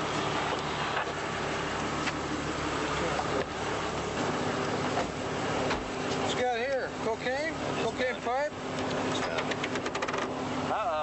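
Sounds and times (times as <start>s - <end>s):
street and car engine noise: 0.0s - 11.0s.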